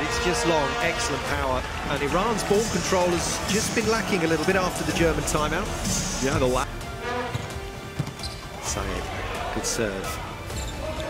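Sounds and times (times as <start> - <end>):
arena music: 0.0 - 11.0.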